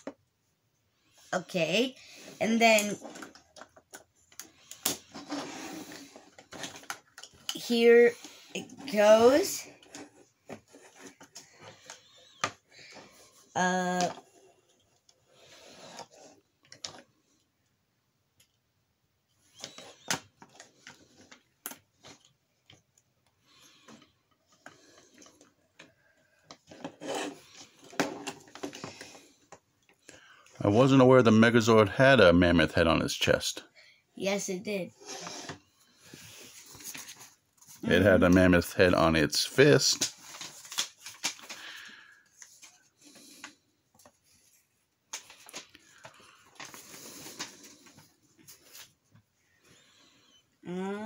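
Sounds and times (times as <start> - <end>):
loud plastic scraping rub: 4.9 - 6.9, 35.0 - 35.6.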